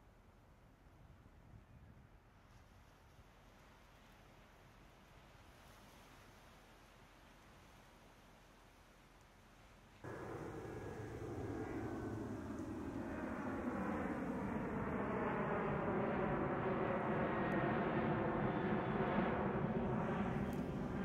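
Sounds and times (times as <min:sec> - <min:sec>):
airplane engine drone: 0:10.0 - 0:21.0.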